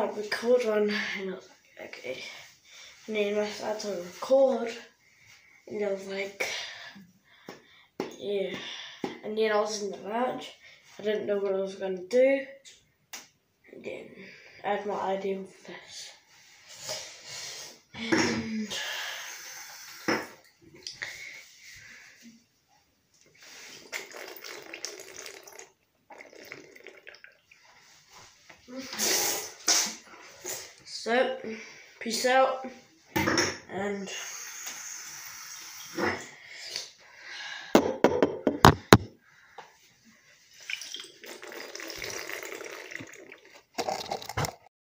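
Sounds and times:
water pouring from bottle: 23.8 - 27.7, 40.6 - 44.7.

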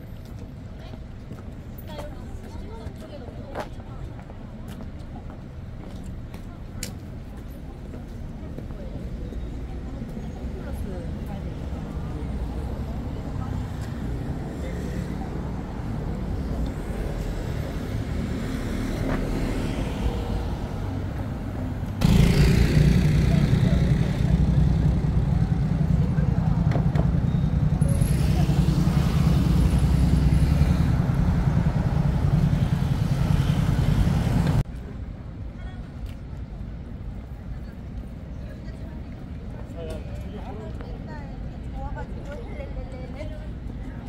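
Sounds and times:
passers-by voices: 0.0 - 44.0
road traffic: 0.0 - 44.0.

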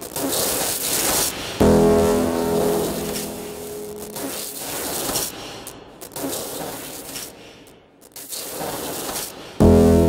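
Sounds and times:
synthesized tone: 1.6 - 5.0.

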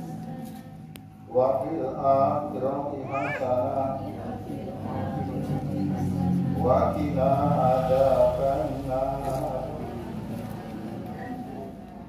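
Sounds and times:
man chanting a prayer: 1.3 - 4.6, 6.1 - 10.4.

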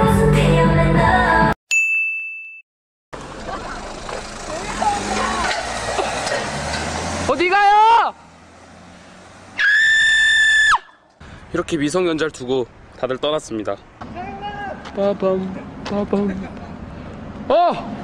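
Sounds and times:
pop music: 0.0 - 1.6
car driving away: 3.2 - 11.5
person yelling: 7.5 - 8.2, 17.5 - 18.0.

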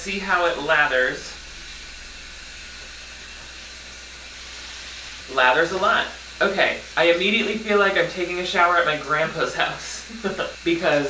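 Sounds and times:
shower spray running: 0.0 - 11.0.

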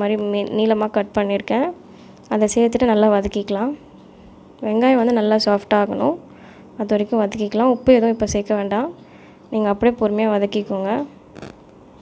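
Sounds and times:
woman speaking: 0.0 - 3.8, 4.6 - 6.2, 6.8 - 11.2.

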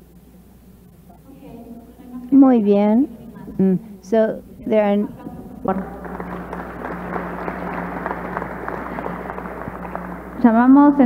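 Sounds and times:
steady hum: 0.0 - 11.0
audience applauding: 5.6 - 11.0.

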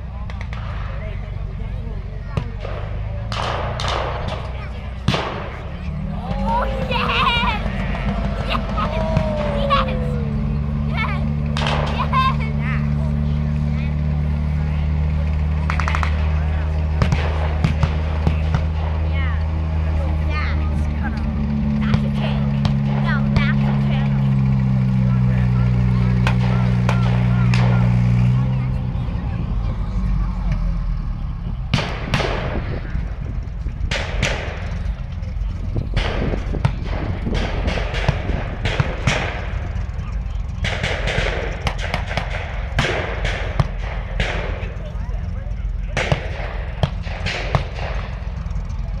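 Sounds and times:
steady low rumble: 0.0 - 49.0
tank engine droning: 0.0 - 49.0.

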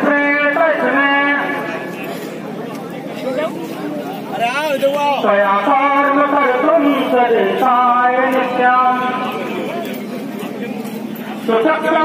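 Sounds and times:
noisy procession background: 0.0 - 12.0.

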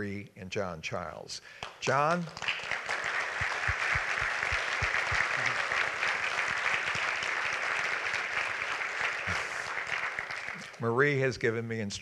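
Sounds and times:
audience applauding: 1.6 - 11.2.

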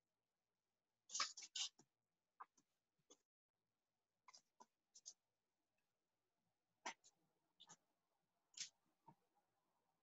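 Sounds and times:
computer mouse clicks and scratches: 1.0 - 3.3, 4.2 - 5.3, 6.8 - 7.9, 8.5 - 9.3.

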